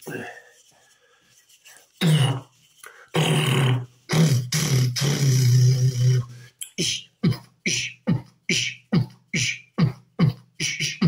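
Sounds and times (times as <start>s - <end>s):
man doing vocal percussion: 1.9s - 11.0s.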